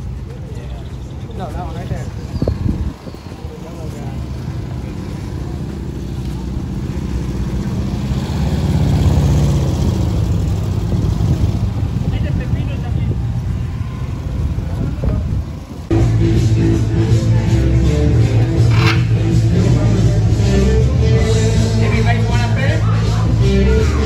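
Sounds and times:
vehicle engine passing: 0:00.0 - 0:24.0.

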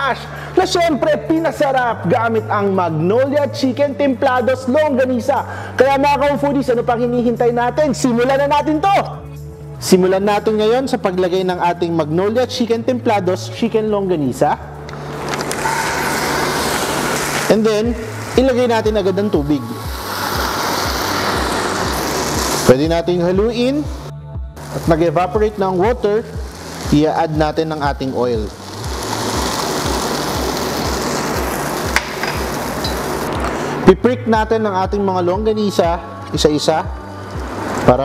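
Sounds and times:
background music with beat: 0:14.4 - 0:38.0
sausages sizzling in a pan: 0:15.6 - 0:22.7, 0:25.7 - 0:33.6.

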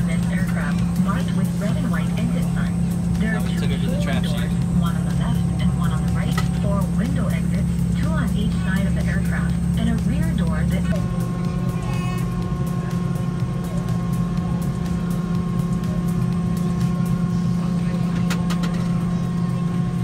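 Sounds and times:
airliner cabin hum: 0:00.0 - 0:20.0.

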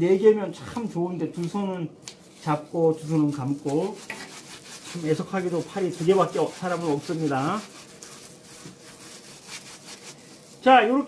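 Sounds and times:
gloved hand rubbing plaster: 0:02.2 - 0:10.8.

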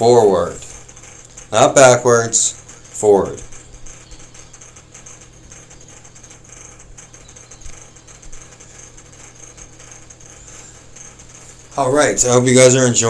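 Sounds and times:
low electrical hum: 0:00.0 - 0:13.0
small faint clicks: 0:00.6 - 0:11.8.

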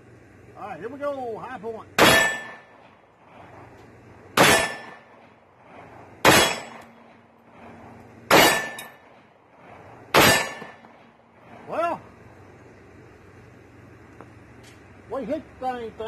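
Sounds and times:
pistol shots with echo: 0:02.0 - 0:02.8, 0:04.4 - 0:05.2, 0:06.2 - 0:07.2, 0:08.3 - 0:09.2, 0:10.1 - 0:11.0.

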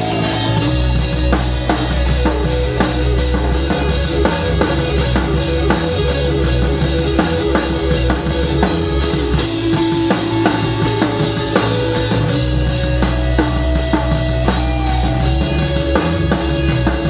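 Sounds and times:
blues-rock band playing: 0:00.0 - 0:17.0.

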